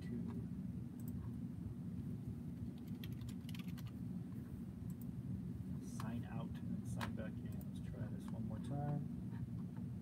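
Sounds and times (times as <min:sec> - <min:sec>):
low room hum: 0:00.0 - 0:10.0
computer keyboard typing: 0:02.6 - 0:04.0.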